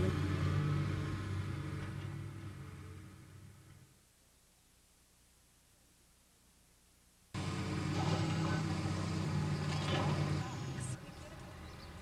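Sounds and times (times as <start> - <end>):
low engine rumble: 0.0 - 4.0, 7.4 - 12.0.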